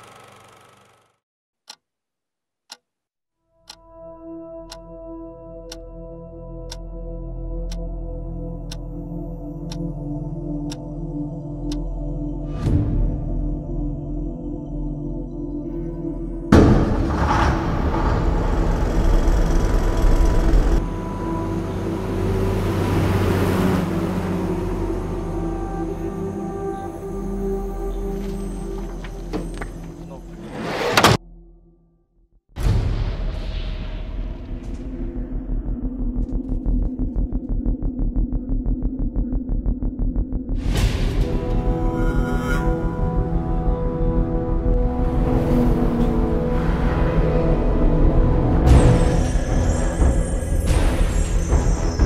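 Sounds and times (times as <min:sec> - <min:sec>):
engine and tyre rumble: 0:00.0 - 0:01.2, 0:16.9 - 0:31.1, 0:35.1 - 0:40.8.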